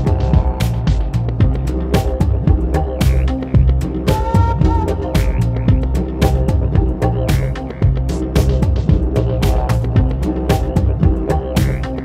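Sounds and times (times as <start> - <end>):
background music with drum beat: 0.0 - 12.0.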